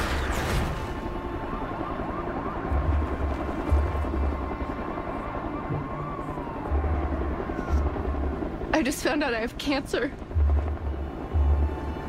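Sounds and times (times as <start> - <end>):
city street ambience: 0.0 - 12.0
distant siren: 0.0 - 12.0
low music: 1.0 - 12.0.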